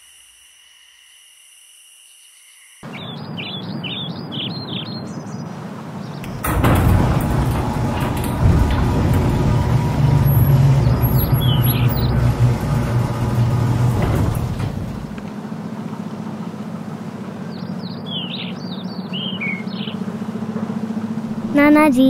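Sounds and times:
birds chirping: 0:02.1 - 0:06.8, 0:10.2 - 0:12.6, 0:14.1 - 0:22.0
car engine rumble pulling up: 0:02.9 - 0:22.0.

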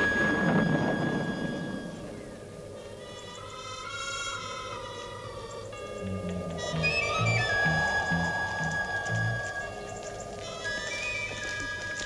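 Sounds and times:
high flute note: 0:06.1 - 0:11.9.

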